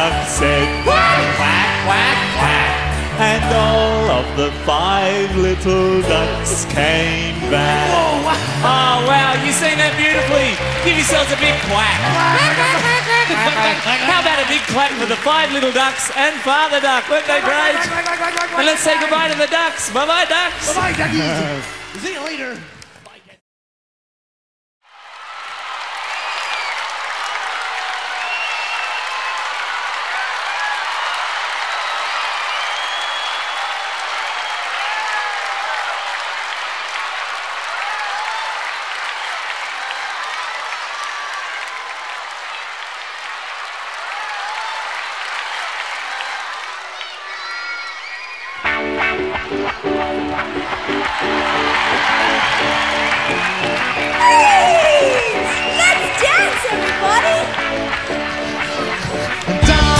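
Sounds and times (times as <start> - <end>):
live band playing: 5.6 - 14.0, 48.6 - 59.9
children cheering and shrieking: 46.1 - 48.9, 53.5 - 57.6.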